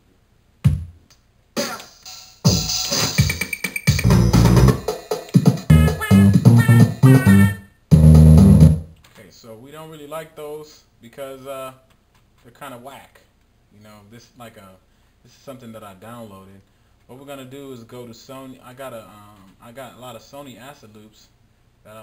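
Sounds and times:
drum machine beats: 0.6 - 8.9
synth and keyboard notes: 4.0 - 4.9, 5.6 - 8.9.

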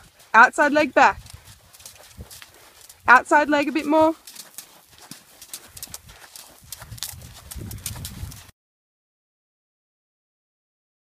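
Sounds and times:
horse hoofbeats: 0.0 - 8.5.

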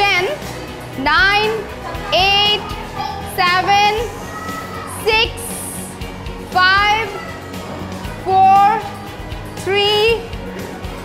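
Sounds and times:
background music: 0.0 - 11.0
girls high-pitched calls: 4.0 - 5.1.

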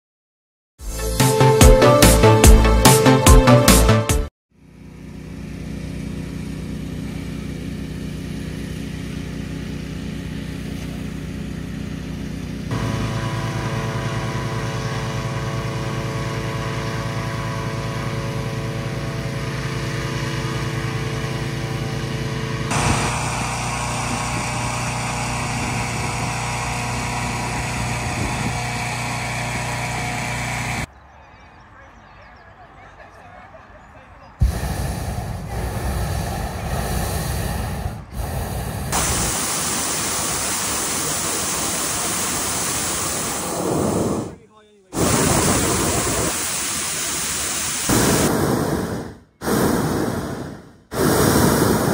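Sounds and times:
inflator fans running: 4.6 - 30.9, 32.7 - 51.9.

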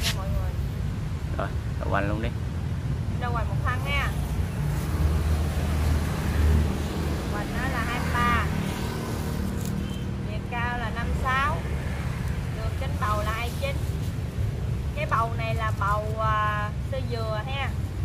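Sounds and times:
woman's voice: 0.0 - 0.6, 3.2 - 4.3, 7.2 - 8.8, 10.2 - 11.7, 12.5 - 13.9, 14.9 - 17.8.

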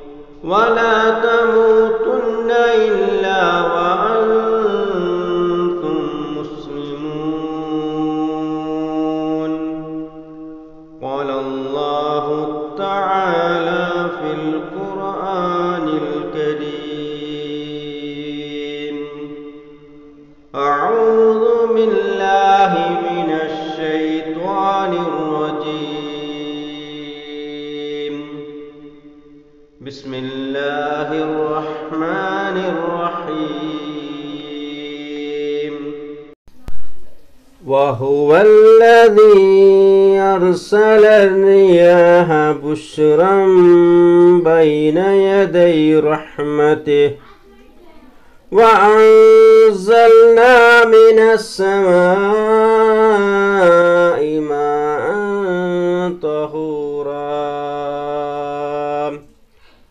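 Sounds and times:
man chanting melodically: 0.0 - 19.8, 20.6 - 29.2, 29.8 - 36.2, 37.6 - 47.4, 48.4 - 59.3.

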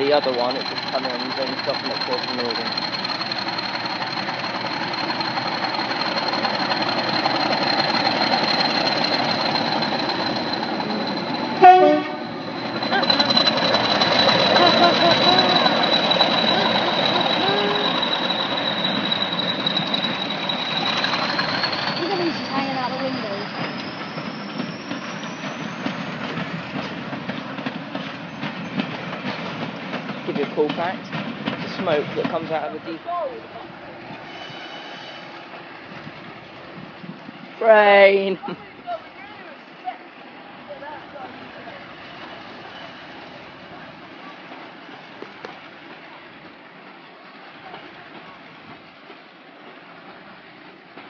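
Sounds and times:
diesel locomotive engine running: 0.0 - 51.0
locomotive horn blast: 11.6 - 12.4.

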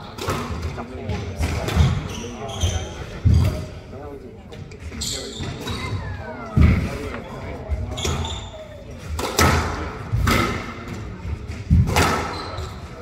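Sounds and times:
shoes squeaking on wooden floor: 1.7 - 3.7, 4.9 - 6.9, 7.7 - 8.6.

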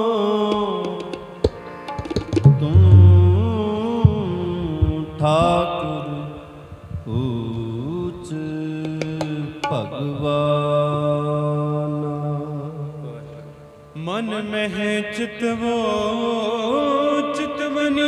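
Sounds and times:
harmonium tones: 0.0 - 10.6
men singing long held notes: 2.4 - 18.0.

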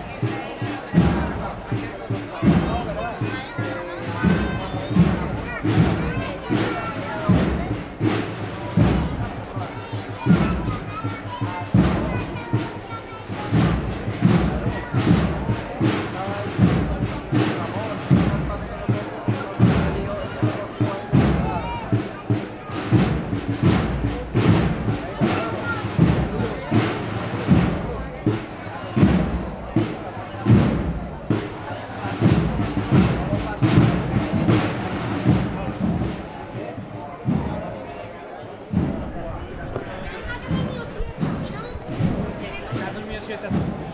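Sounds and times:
crowd chatter: 0.0 - 43.9
drums beating march rhythm: 0.0 - 43.9.

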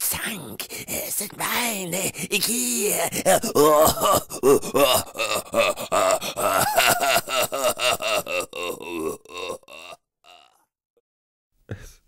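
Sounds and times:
man groaning and grunting: 0.7 - 10.6.

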